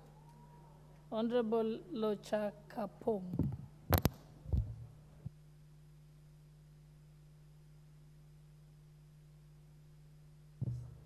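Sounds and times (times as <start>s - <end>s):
steady low hum: 0.0s - 11.0s
dull low thump: 10.6s - 11.0s
sharp knock on microphone: 10.6s - 11.0s.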